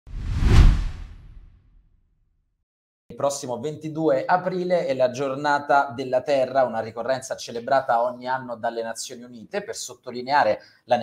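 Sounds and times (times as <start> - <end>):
whoosh with deep boom: 0.1 - 1.8.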